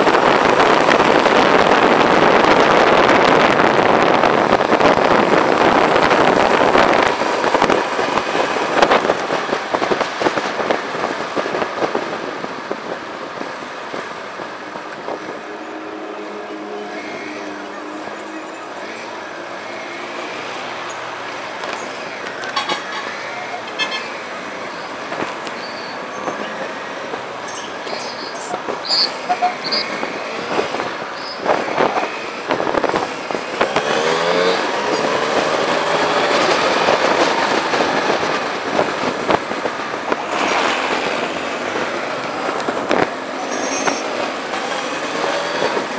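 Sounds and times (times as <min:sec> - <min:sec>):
street traffic: 0:00.0 - 0:45.9
wind noise: 0:00.0 - 0:45.9.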